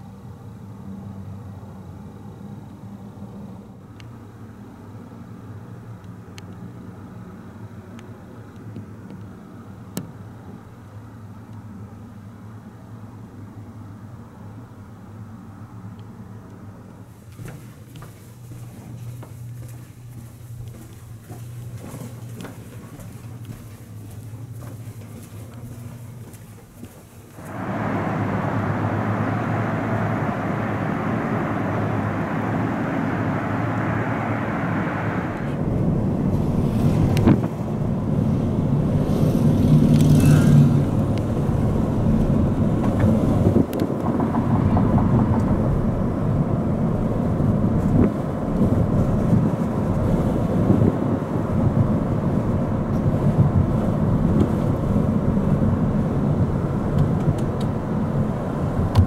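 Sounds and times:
car tyre and engine rumble: 0.0s - 59.0s
outdoor street sound: 0.0s - 59.0s.

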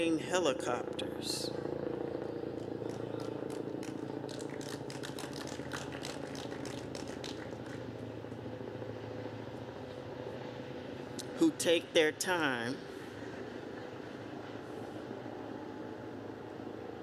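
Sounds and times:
helicopter flying overhead: 0.0s - 17.0s.

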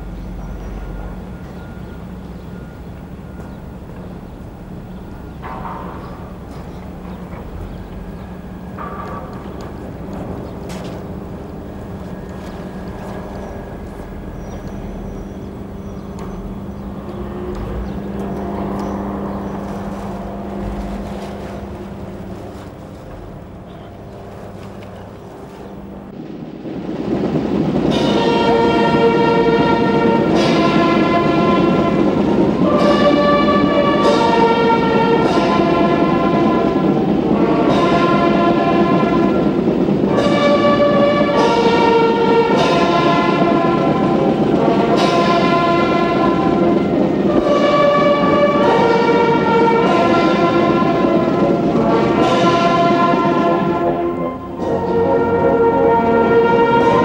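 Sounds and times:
brass band playing chords: 2.0s - 57.0s.

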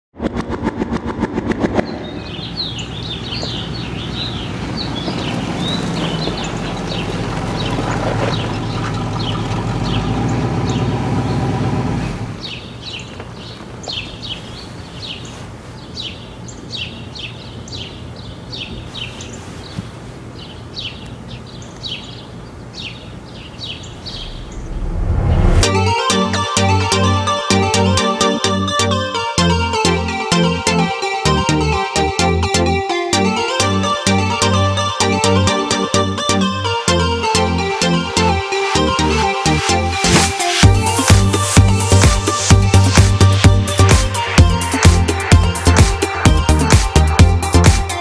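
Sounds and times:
birds chirping: 1.8s - 11.4s, 12.4s - 25.6s
low steady rumble: 23.9s - 25.7s.

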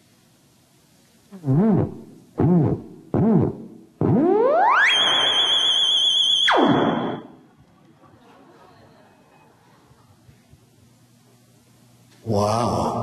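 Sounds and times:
theremin swooping notes: 2.6s - 7.4s.

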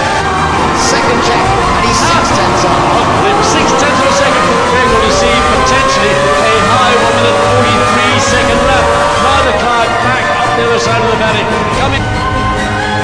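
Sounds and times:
commentator speaking: 0.0s - 12.6s
racing car engine accelerating: 0.0s - 13.0s.

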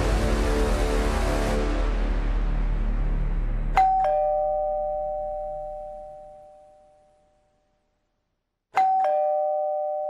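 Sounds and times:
two-tone doorbell chime: 3.8s - 7.4s, 8.7s - 10.0s.

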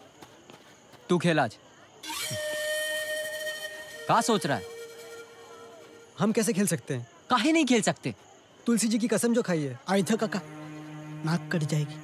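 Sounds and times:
dramatic hissing sound effect sting: 2.1s - 6.3s.

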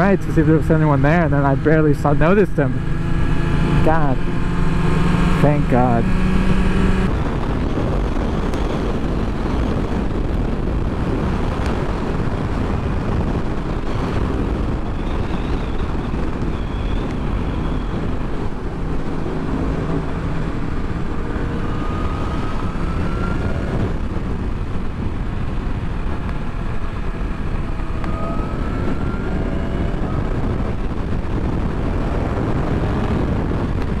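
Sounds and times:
motorcycle engine cruising: 0.0s - 34.0s
wind rushing over microphone: 0.0s - 34.0s.

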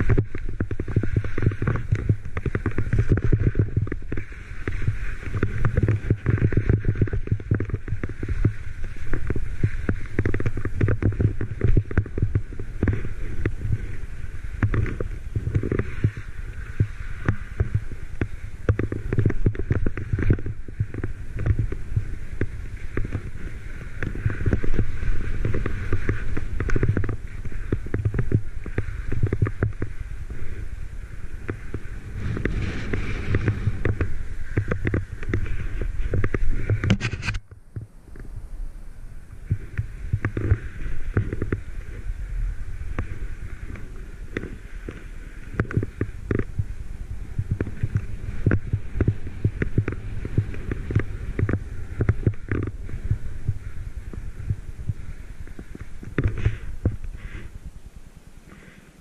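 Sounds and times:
skis scraping over snow: 0.0s - 59.0s
wind buffeting microphone: 0.0s - 59.0s.

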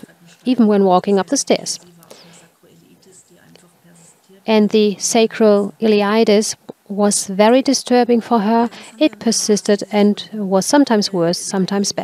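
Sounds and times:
low steady hum: 0.0s - 12.0s
faint intake of breath: 2.0s - 2.6s, 8.7s - 9.0s.

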